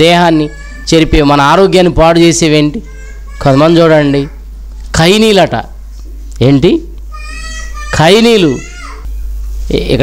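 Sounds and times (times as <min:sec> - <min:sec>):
man speaking: 0:00.0 - 0:05.8, 0:07.9 - 0:08.8, 0:09.7 - 0:10.0.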